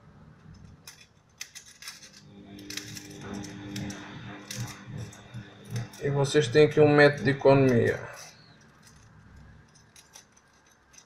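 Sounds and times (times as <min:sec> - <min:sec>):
scissors snipping foil: 0:00.9 - 0:11.0.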